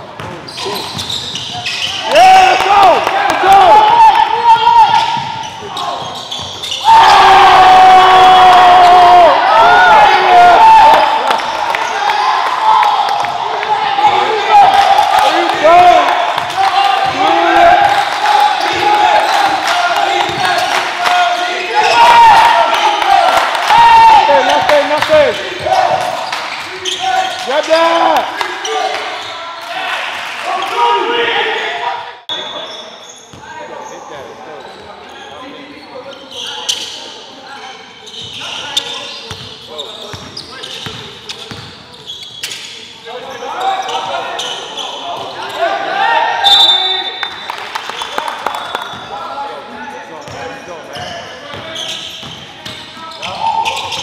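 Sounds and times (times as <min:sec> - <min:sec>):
sneakers squeaking on court: 0:00.0 - 0:02.1, 0:04.6 - 0:06.9, 0:24.4 - 0:27.7, 0:32.3 - 0:45.6, 0:48.6 - 0:49.2, 0:50.0 - 0:54.0
players' voices: 0:00.0 - 0:54.0.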